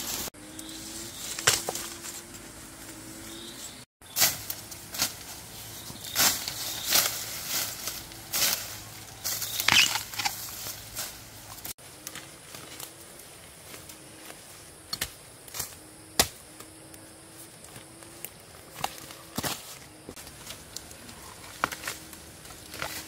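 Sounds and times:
bamboo leaves rustling and crackling: 0.0 - 23.0
bamboo stalks snapping: 0.6 - 2.1, 4.1 - 12.9, 14.9 - 17.0, 17.7 - 23.0.

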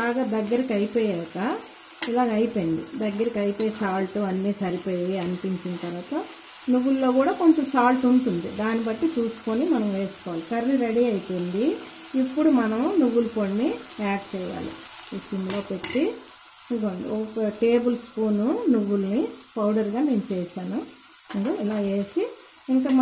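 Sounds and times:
beans sizzling in a pot: 0.0 - 23.0
woman talking: 0.0 - 23.0.

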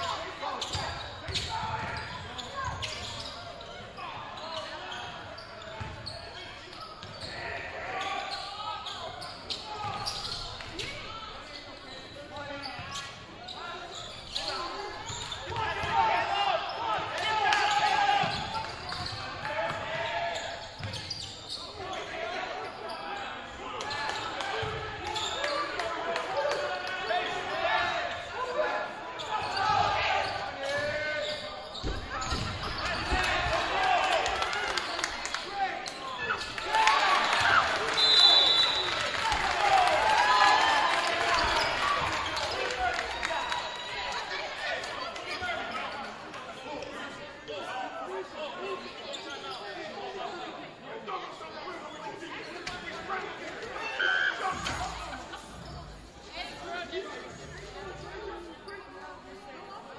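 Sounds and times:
voices shouting in a gym: 0.0 - 59.9.

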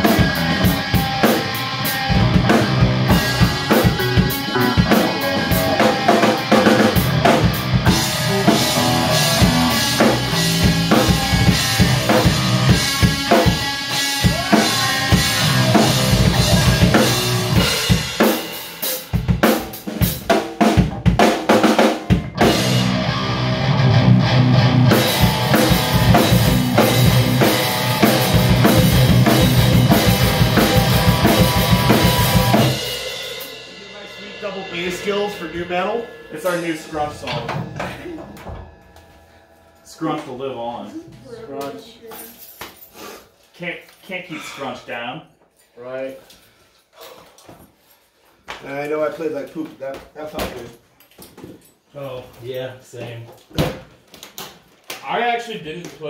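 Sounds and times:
drum kit: 0.0 - 41.3
rock band playing loud: 0.0 - 41.3
ringing tones: 34.2 - 42.9.

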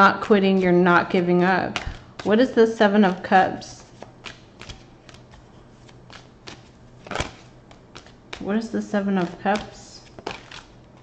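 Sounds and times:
cards being shuffled: 3.8 - 11.0.

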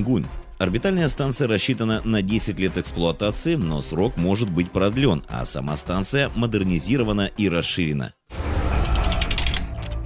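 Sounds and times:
rapid mechanical clicks: 8.6 - 10.0.

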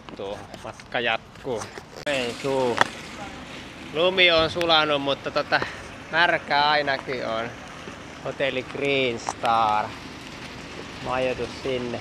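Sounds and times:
street background noise: 0.0 - 12.0
man speaking: 0.2 - 7.6, 8.2 - 10.0, 11.0 - 12.0.

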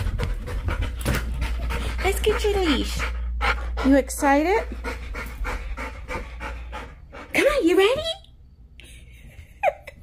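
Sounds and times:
dog panting: 0.0 - 8.0.

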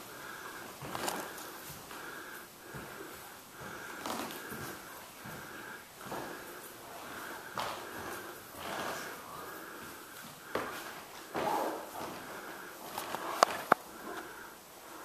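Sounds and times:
soft breaths and sniffs: 0.0 - 15.0.

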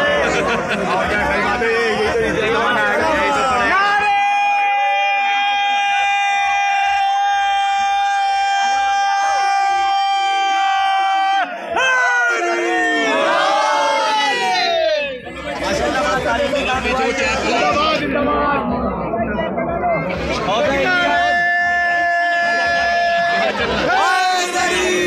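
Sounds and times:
crowd shouting and chattering: 0.0 - 25.0.

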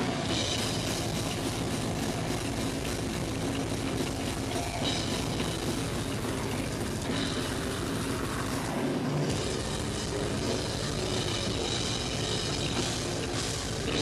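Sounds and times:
band playing live: 0.0 - 14.0
distorted down-tuned guitars: 0.0 - 14.0
rapid bass drum strikes: 0.0 - 14.0.

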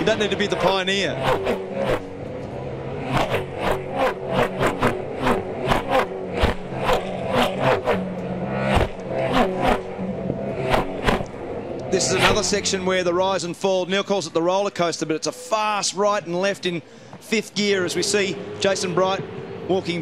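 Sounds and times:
racing car engines: 0.0 - 20.0
sharp cracks: 10.6 - 11.4.

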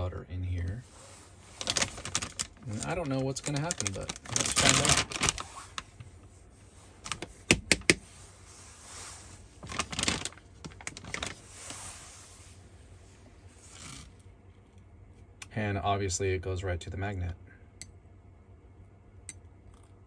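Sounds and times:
soft hisses of powder sprinkling: 8.0 - 9.6, 11.4 - 13.6.

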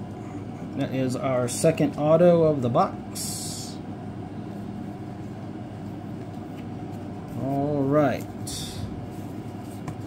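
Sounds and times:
room noise: 0.0 - 10.0.

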